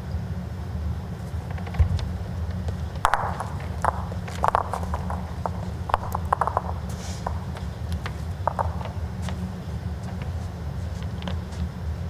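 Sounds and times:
low hall hum: 0:00.0 - 0:12.0.

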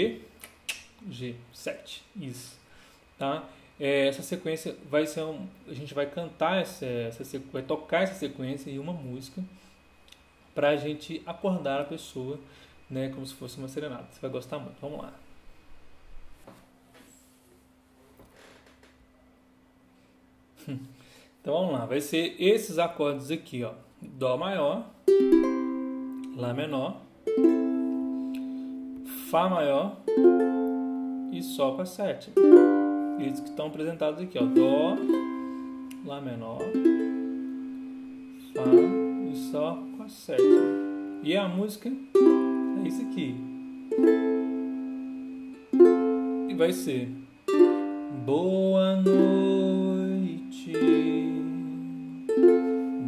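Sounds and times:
ukulele chord strummed: 0:25.1 - 0:26.5, 0:27.2 - 0:29.2, 0:30.0 - 0:31.6, 0:32.4 - 0:46.9, 0:47.5 - 0:53.0.

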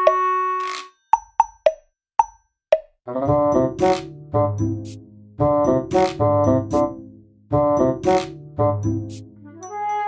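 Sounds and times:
music with a beat: 0:03.5 - 0:04.1, 0:04.7 - 0:06.9, 0:07.6 - 0:09.2.

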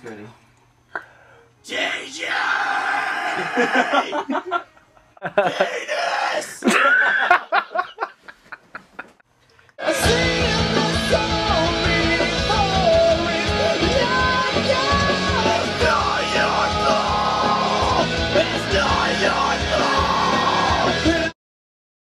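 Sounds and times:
rock music with screamed vocal: 0:01.7 - 0:04.2, 0:09.8 - 0:21.3.

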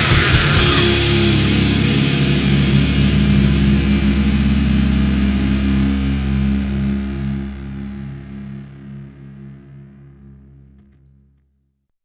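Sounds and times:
distorted guitar and bass chord: 0:00.0 - 0:11.4.

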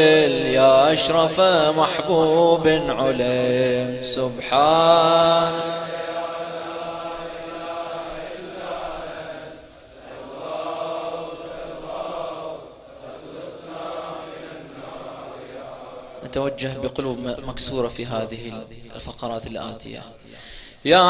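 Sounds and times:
men chanting in unison: 0:00.0 - 0:16.7.

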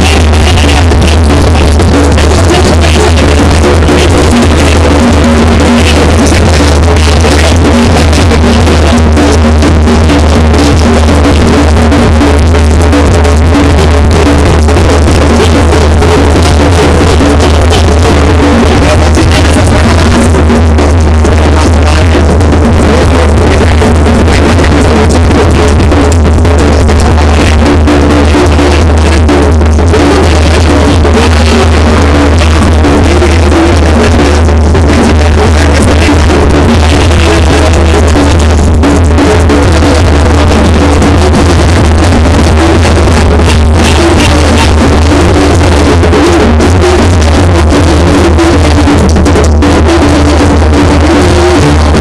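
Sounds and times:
brass band with bass drum: 0:00.0 - 0:52.0.

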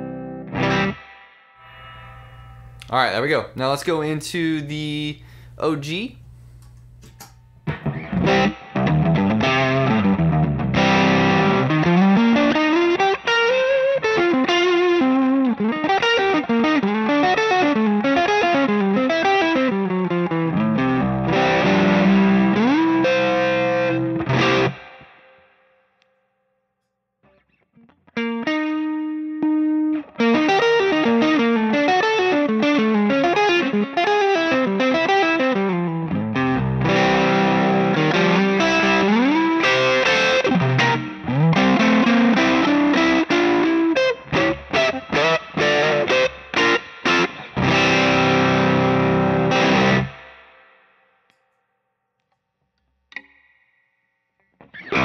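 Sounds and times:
overdriven electric guitar riffs: 0:00.0 - 0:02.9, 0:06.3 - 0:25.6, 0:27.3 - 0:51.3, 0:54.6 - 0:55.0.

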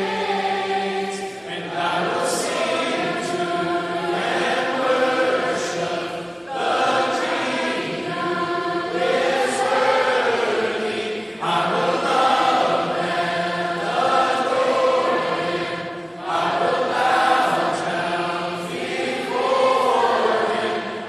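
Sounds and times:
crowd singing worship song: 0:00.0 - 0:21.0.

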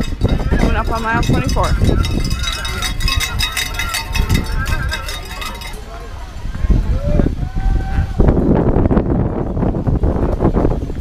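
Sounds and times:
cowbell clanking: 0:00.0 - 0:06.0
background voices: 0:00.0 - 0:08.2.

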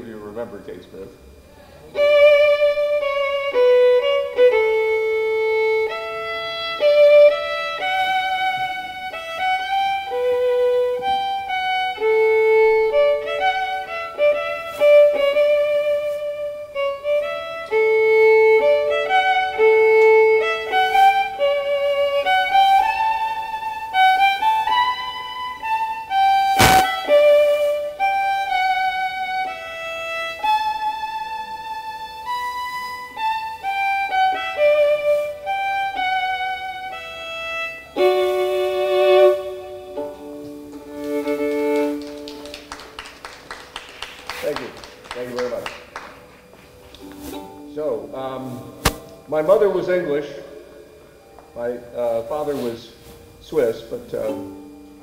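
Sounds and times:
solo violin melody: 0:01.9 - 0:42.6
sharp knock: 0:26.6 - 0:27.0, 0:48.8 - 0:49.2.

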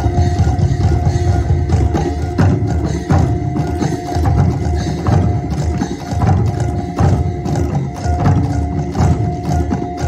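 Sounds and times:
large drum beating: 0:00.0 - 0:10.0.

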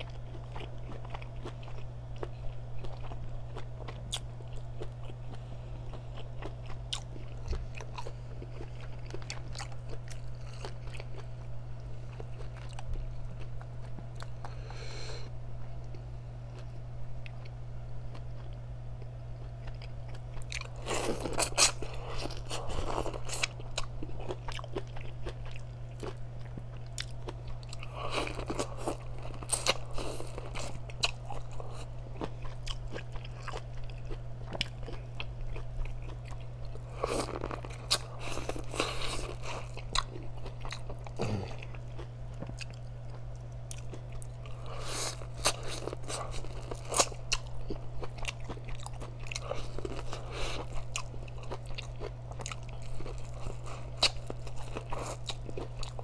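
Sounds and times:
chewing corn on the cob: 0:00.0 - 0:14.6, 0:15.8 - 0:56.0
steady low hum: 0:00.0 - 0:56.0.

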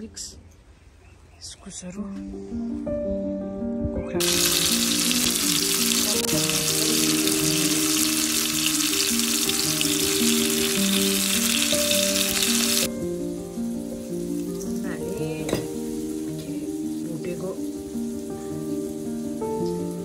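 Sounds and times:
tomatoes sizzling in hot oil: 0:04.2 - 0:20.0.

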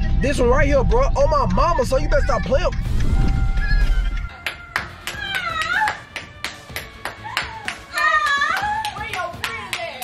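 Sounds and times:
low rumble: 0:00.0 - 0:04.4
background music with clicking beat: 0:00.0 - 0:10.0.

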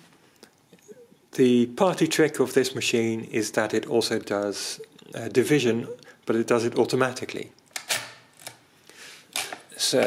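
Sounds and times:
person speaking: 0:00.8 - 0:07.6, 0:09.4 - 0:10.0.

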